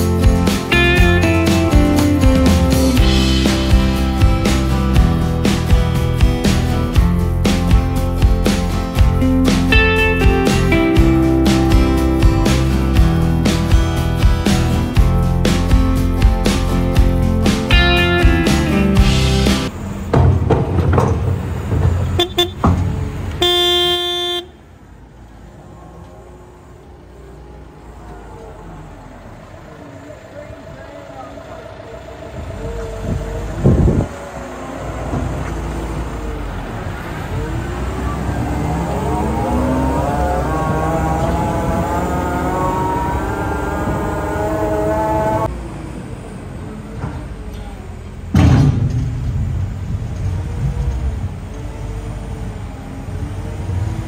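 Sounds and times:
tractor diesel engine revving: 0.0s - 54.0s
vehicle horn toot: 22.1s - 22.7s, 23.4s - 24.7s.

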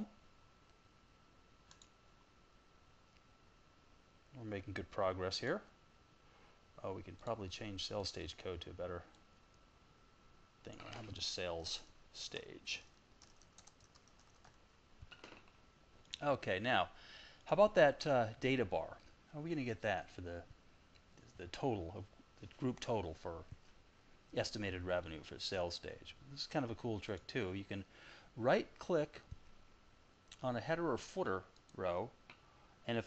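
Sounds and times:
faint high hum: 0.0s - 33.0s
faint keyboard typing: 1.6s - 2.0s, 7.0s - 7.4s, 12.3s - 16.2s, 31.5s - 32.4s
computer mouse clicks: 1.7s - 2.0s.

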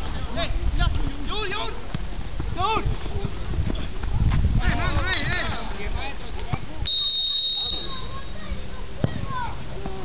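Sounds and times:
wind rumble: 0.0s - 6.0s
microphone handling noise: 1.9s - 5.8s.

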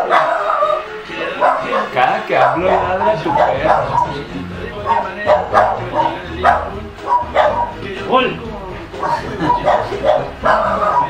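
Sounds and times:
dog barking: 0.0s - 7.8s, 9.0s - 11.0s.

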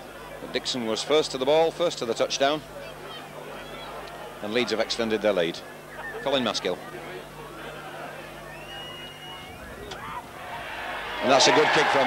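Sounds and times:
crowd murmuring and calling out: 0.0s - 12.0s.

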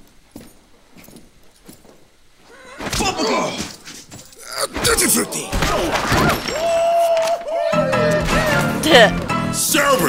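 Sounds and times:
faint boot footsteps: 0.0s - 2.6s.

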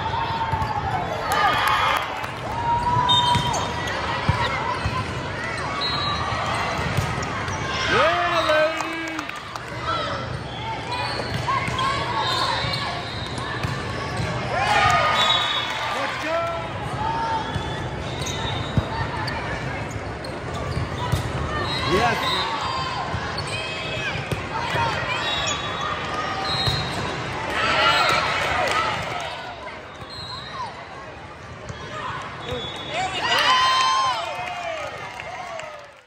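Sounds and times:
spectator chatter: 0.0s - 35.8s.

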